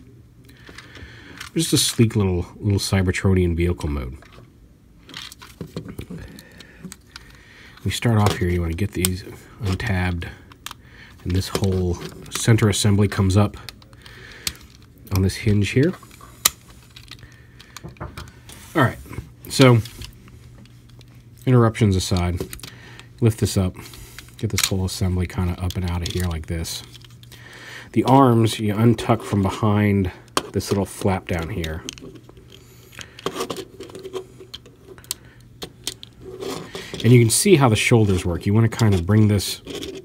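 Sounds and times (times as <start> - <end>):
faint low hum: 0.0 - 40.0
plastic toy parts clicking: 24.5 - 24.8, 30.3 - 32.2
plastic figure clicking and rattling: 30.3 - 37.2.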